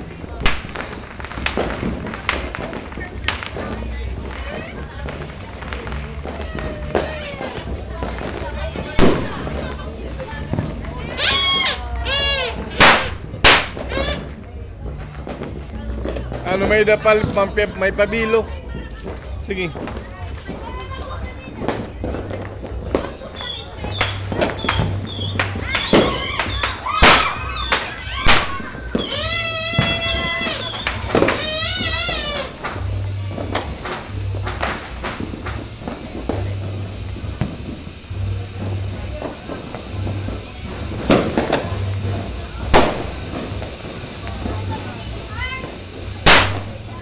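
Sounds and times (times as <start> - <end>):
firecrackers exploding: 0.0 - 47.0.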